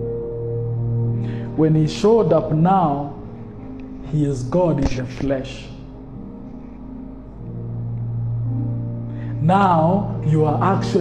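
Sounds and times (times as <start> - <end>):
soft keyboard chord: 0.0 - 11.0.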